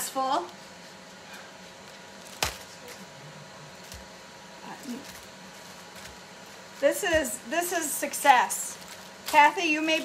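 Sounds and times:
kitchen room tone: 0:00.0 - 0:10.0
wax paper crackling: 0:00.0 - 0:10.0.

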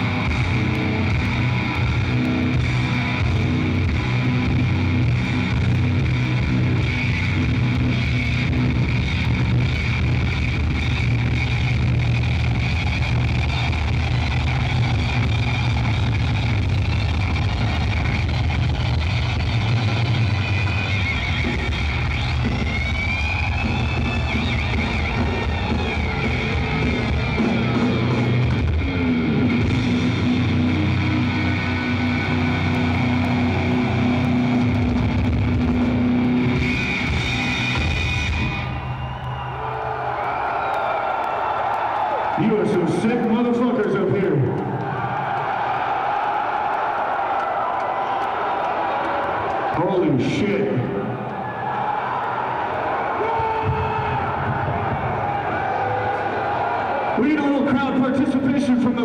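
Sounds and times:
distorted electric guitar: 0:00.0 - 0:39.3.

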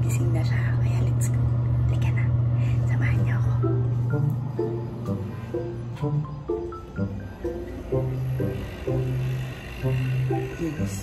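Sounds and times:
woman whispering: 0:00.0 - 0:03.7
background music low tone: 0:00.0 - 0:11.0.

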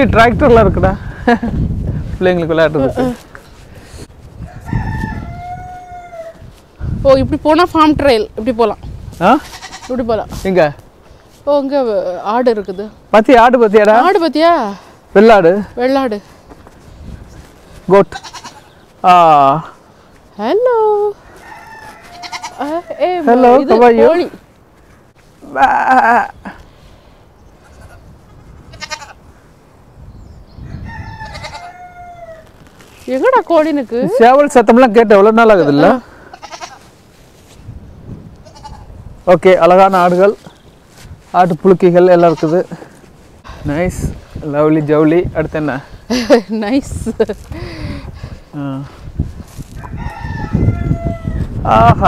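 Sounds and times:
rooster crowing: 0:04.4 - 0:06.5, 0:21.2 - 0:23.3, 0:30.6 - 0:32.5, 0:49.8 - 0:51.6
goat bleating: 0:09.4 - 0:10.1, 0:18.0 - 0:18.7, 0:21.7 - 0:24.1, 0:27.6 - 0:29.2, 0:31.2 - 0:32.1, 0:36.1 - 0:36.9, 0:38.4 - 0:38.9, 0:42.1 - 0:42.8.

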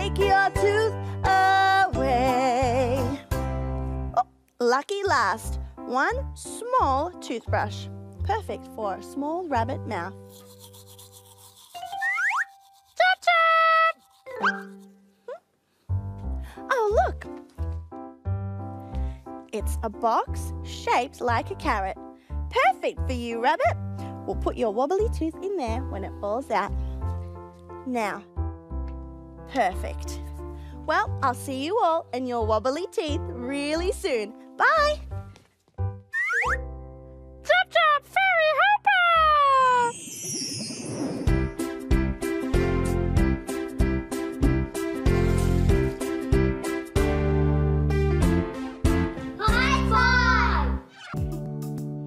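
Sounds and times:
toothbrush scrubbing teeth: 0:10.1 - 0:15.1
high-pitched chirps bending in pitch: 0:12.0 - 0:12.5, 0:36.1 - 0:36.7, 0:39.4 - 0:41.3
rising whistle-like glide: 0:39.8 - 0:41.3.

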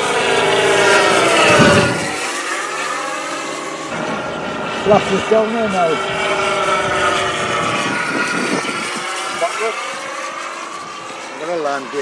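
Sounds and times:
model aircraft motor droning: 0:00.0 - 0:12.0.

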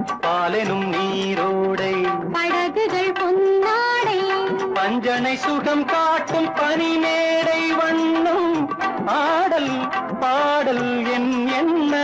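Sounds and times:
film song with instrumental accompaniment: 0:00.0 - 0:12.0.

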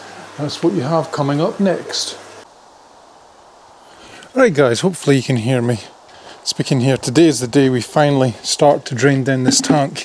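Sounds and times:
faint outdoor background hiss: 0:00.0 - 0:10.0
man speaking: 0:07.4 - 0:10.0.

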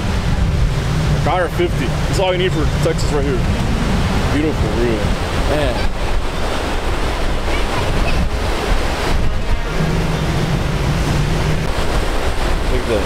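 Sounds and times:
surf breaking on beach: 0:00.0 - 0:13.0
wind rumble on microphone: 0:00.0 - 0:13.0.

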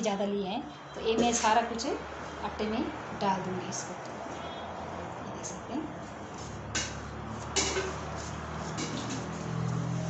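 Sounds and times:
plate knocking on steel bowl: 0:07.6 - 0:08.0, 0:08.8 - 0:09.3.

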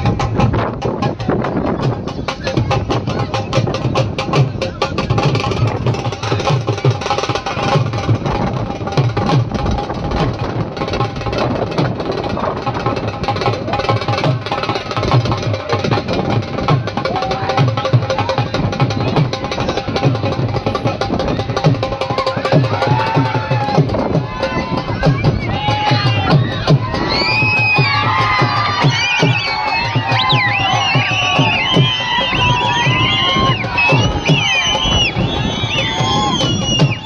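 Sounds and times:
crowd chatter: 0:00.0 - 0:37.0
fast drumming: 0:00.0 - 0:37.0.

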